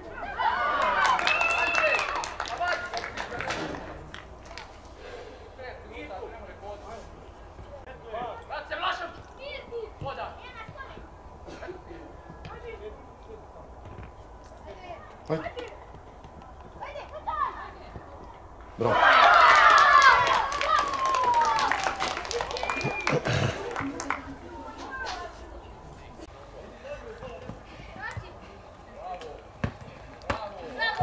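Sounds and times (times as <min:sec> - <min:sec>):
open-air background noise: 0:00.0 - 0:31.0
high shouting voices: 0:18.7 - 0:23.4
football kicked and bouncing: 0:29.6 - 0:30.6.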